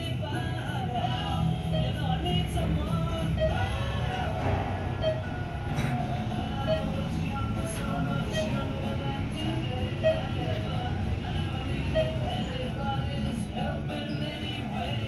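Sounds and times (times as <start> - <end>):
background music: 0.0 - 15.0
elevator low rumble: 0.0 - 15.0.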